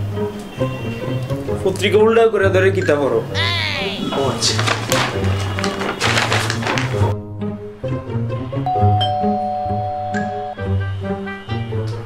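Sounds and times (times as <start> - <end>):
doorbell two-note ding-dong: 8.7 - 10.6.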